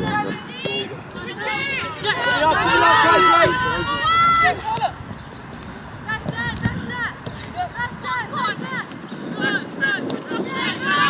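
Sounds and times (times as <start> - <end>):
women shouting: 0.0 - 5.0, 9.4 - 11.0.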